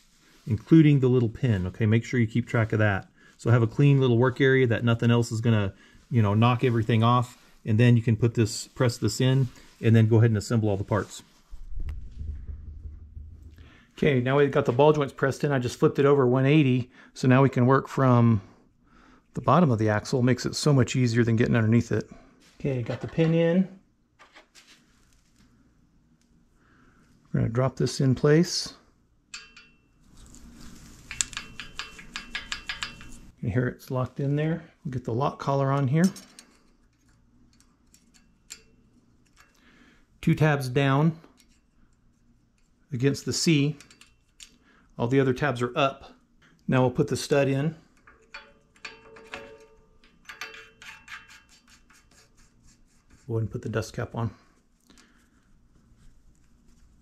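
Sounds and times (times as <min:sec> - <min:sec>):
small metal parts clicking: 0:31.0 - 0:33.3.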